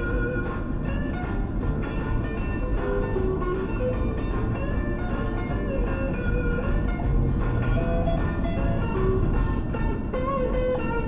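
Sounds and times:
guitar music on car radio: 0.0 - 11.0
low road noise: 0.0 - 11.0.

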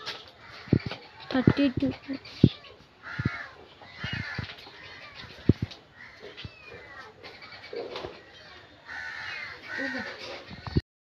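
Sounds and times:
harsh bird calls: 0.0 - 10.8.

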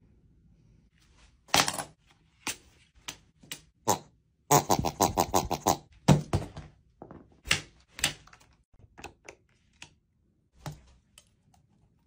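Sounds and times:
rubber squeeze toy squealing: 3.9 - 5.9.

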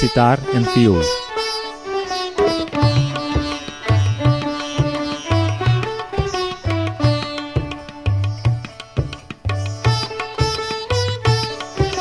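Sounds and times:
sitar melody: 0.0 - 12.0
tabla strokes: 0.0 - 12.0
violin: 0.0 - 12.0.

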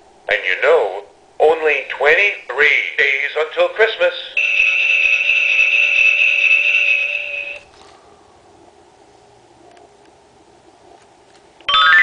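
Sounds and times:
steady electronic tone: 4.4 - 7.7.

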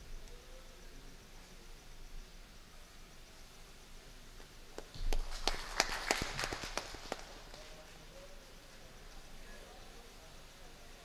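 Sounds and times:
scattered hand claps: 4.4 - 8.1.

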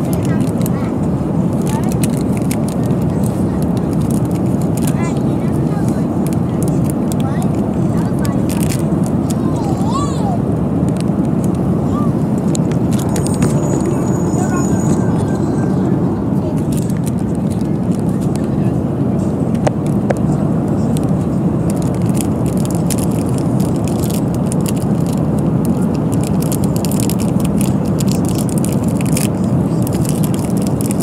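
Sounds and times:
airliner engine and airflow noise: 0.0 - 31.0.

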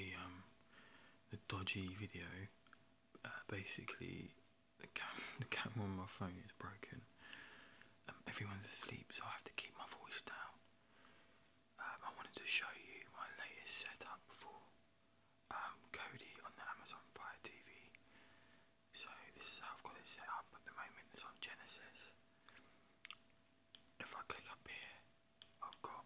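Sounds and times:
man whispering: 0.0 - 0.5, 1.3 - 2.6, 3.2 - 7.1, 8.0 - 10.6, 11.8 - 14.7, 15.5 - 18.0, 18.9 - 22.2, 24.0 - 26.0
faint steady hum: 0.0 - 26.0.

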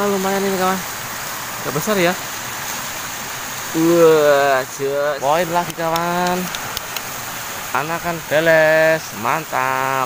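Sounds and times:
river flowing: 0.0 - 10.0
man talking: 1.6 - 2.2, 3.7 - 6.6, 7.7 - 10.0.

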